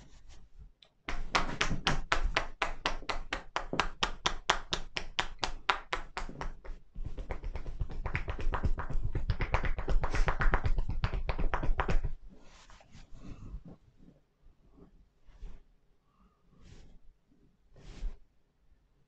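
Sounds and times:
hands drumming on shoulders: 1.1s - 12.2s.

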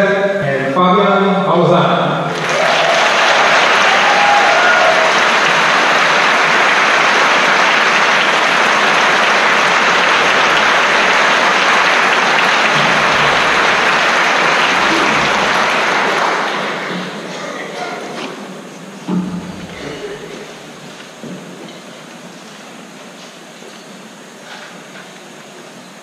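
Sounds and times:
audience applauding: 2.3s - 17.5s.

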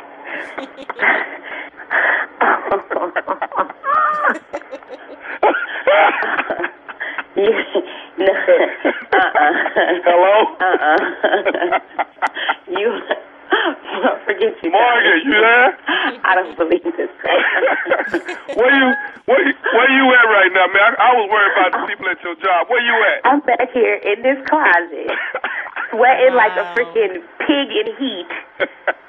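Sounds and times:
people laughing and exclaiming: 0.4s - 1.2s, 3.3s - 5.3s, 18.0s - 19.3s, 26.0s - 27.1s
voices over telephone line: 14.5s - 17.2s, 18.1s - 23.5s, 26.0s - 28.2s.

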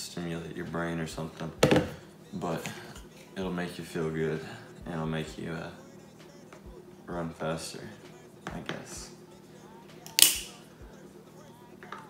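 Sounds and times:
knock on stone countertop: 1.6s - 2.0s.

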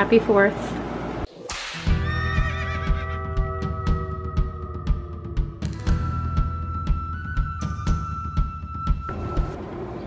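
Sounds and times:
sharp percussion hits: 1.4s - 2.2s
horse whinny: 2.0s - 3.4s
music with held chords: 3.2s - 9.6s.

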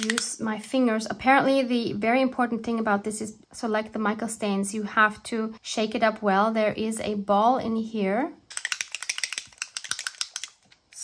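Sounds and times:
mixing ball rattling in bottle: 8.5s - 11.0s.

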